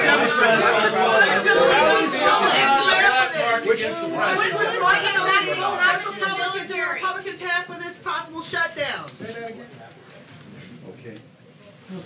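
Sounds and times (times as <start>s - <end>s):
overlapping chatter of people: 0.0s - 12.0s.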